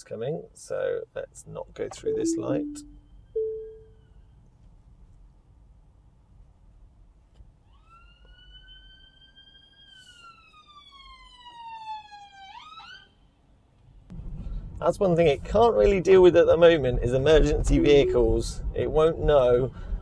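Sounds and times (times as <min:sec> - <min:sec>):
ambulance siren: 0:07.8 - 0:13.0, 0:17.8 - 0:18.6.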